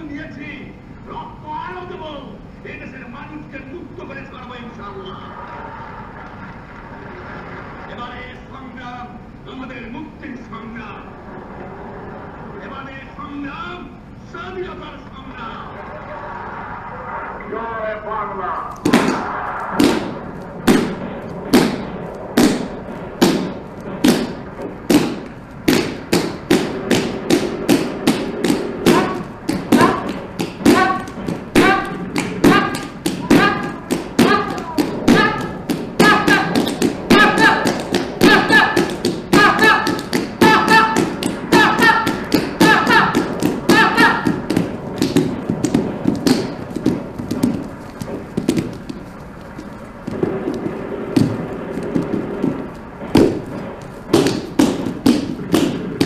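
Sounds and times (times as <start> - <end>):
feet striking stage floor: 18.8 - 56.0.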